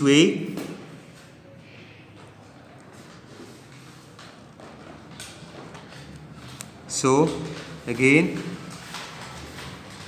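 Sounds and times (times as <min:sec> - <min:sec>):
paper rustling: 0:02.8 - 0:10.0.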